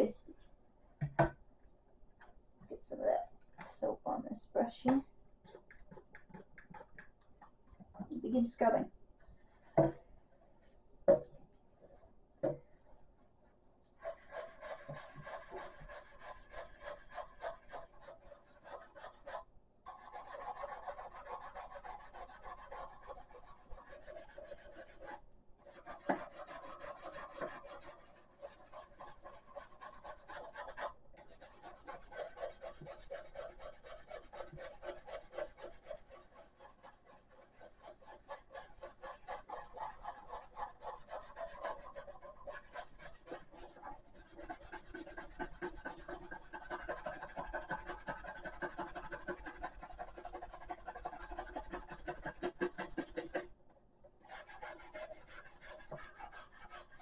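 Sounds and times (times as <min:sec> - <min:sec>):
toothbrush scrubbing plastic: 0:04.7 - 0:08.8, 0:13.9 - 0:53.5, 0:54.2 - 0:57.0.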